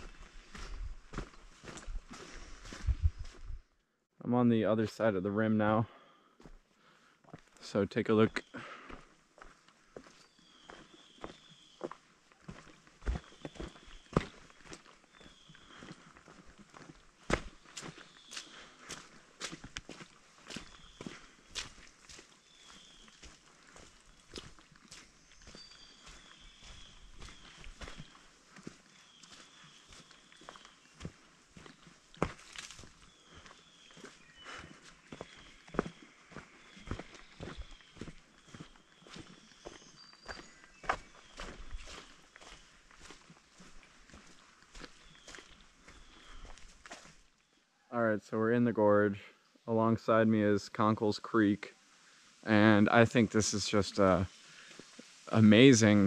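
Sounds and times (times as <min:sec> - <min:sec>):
footsteps on leaves and twigs: 0:00.0 - 0:03.6, 0:08.3 - 0:47.5, 0:52.3 - 0:56.0.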